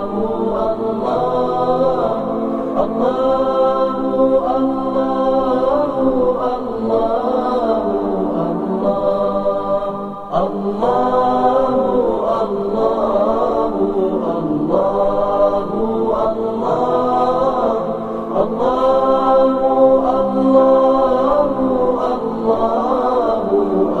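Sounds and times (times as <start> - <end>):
devotional chanting: 0.0 - 24.0.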